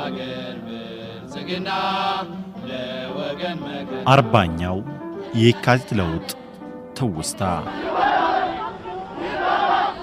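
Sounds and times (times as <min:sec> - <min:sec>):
vocal chanting with held notes: 0:00.0 - 0:10.0.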